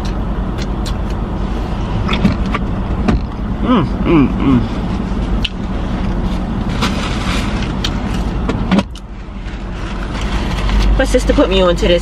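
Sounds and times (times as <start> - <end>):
car cabin hum and rumble: 0.0 - 12.0.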